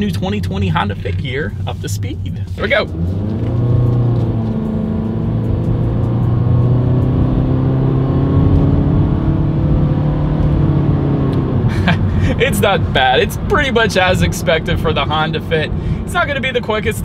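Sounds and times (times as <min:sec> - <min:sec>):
car engine revving at full throttle: 0:01.5 - 0:16.9.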